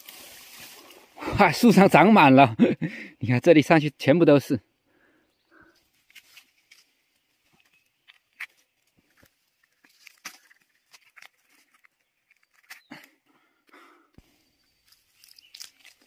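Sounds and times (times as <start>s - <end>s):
brushing of ferns and leaves: 0.0s - 1.2s, 5.8s - 7.8s, 14.8s - 16.0s
mushrooms snapping off log: 15.2s - 16.0s.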